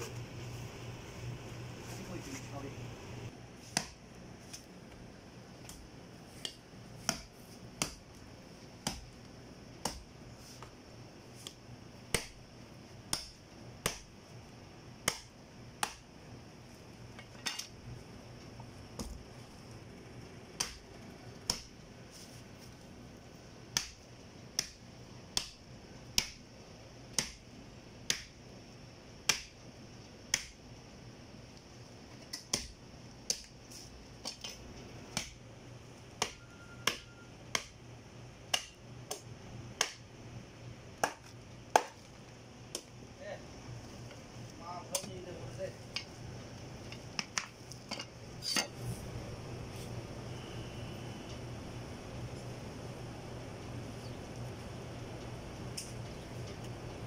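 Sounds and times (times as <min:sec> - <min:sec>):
meat cleaver chopping on wood: 0:08.8 - 0:09.1.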